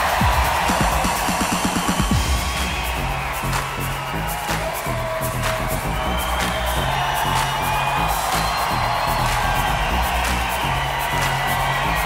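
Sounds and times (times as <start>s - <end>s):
crowd cheering: 0.0s - 12.0s
held bass line: 0.0s - 12.0s.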